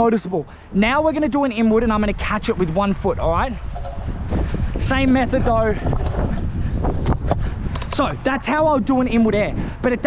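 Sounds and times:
wind buffeting microphone: 0:00.6 - 0:10.0
scooter wheels rolling on concrete: 0:03.5 - 0:09.1.

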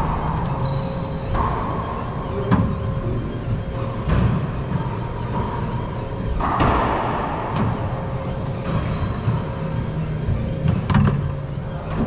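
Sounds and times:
steady background noise: 0:00.0 - 0:12.0
racquetball knocks echoing: 0:06.3 - 0:08.9.

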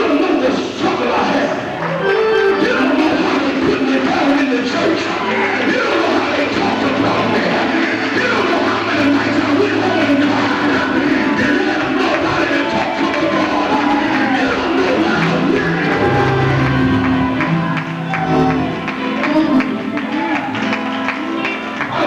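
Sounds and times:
voices singing and calling out: 0:00.0 - 0:18.8.

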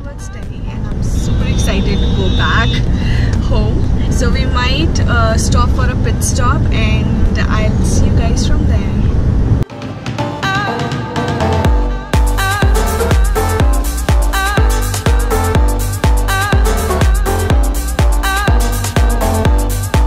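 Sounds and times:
woman talking: 0:00.0 - 0:09.2.

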